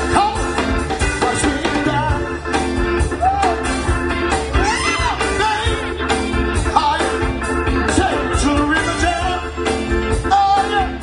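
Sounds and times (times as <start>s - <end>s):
live band groove: 0.0s - 11.0s.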